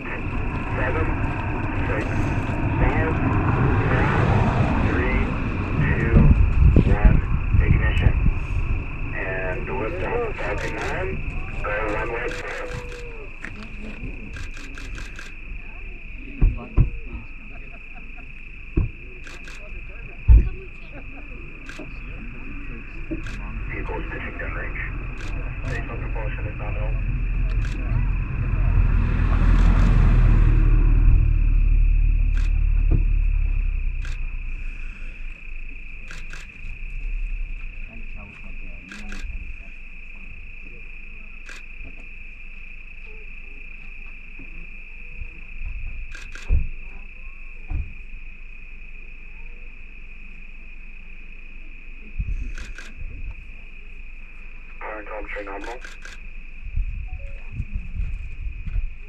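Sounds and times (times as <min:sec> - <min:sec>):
low rumble: 0:00.0 - 0:40.8, 0:54.2 - 0:59.0
crickets chirping: 0:00.0 - 0:59.0.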